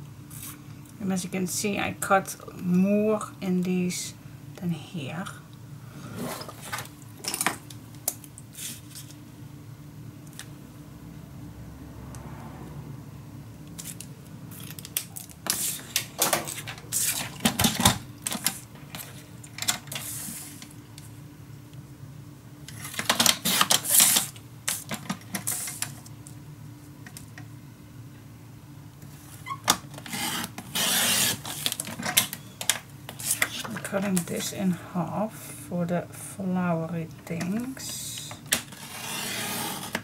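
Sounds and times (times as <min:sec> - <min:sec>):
paper trimmer blade strokes: 0:30.0 - 0:31.7, 0:38.7 - 0:40.0.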